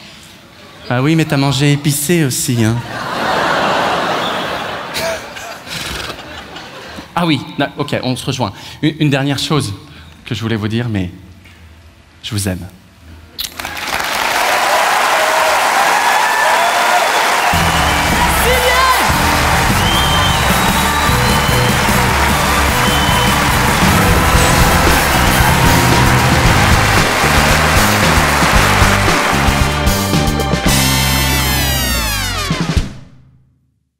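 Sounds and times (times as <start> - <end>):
audience applauding loudly: 13.5 - 32.2
music with heavy bass beat: 19.1 - 33.0.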